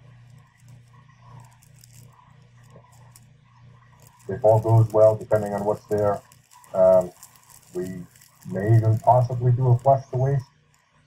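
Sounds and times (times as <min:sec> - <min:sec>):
light hiss: 0:00.0 - 0:11.0
low hum: 0:00.0 - 0:11.0.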